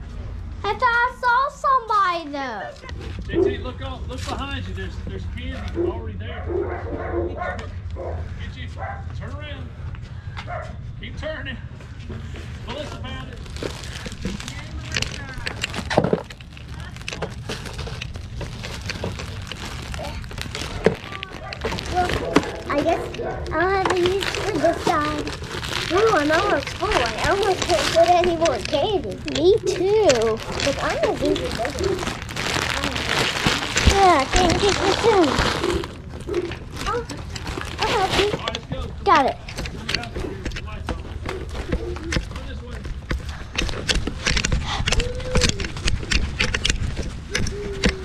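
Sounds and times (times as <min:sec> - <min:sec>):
low handling rumble: 0:00.0 - 0:48.0
faint voices: 0:11.6 - 0:48.0.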